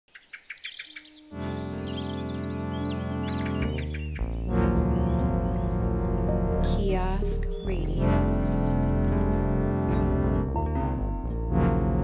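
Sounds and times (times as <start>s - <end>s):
bird chirps: 0.1s - 5.8s
held musical chord: 1.3s - 12.0s.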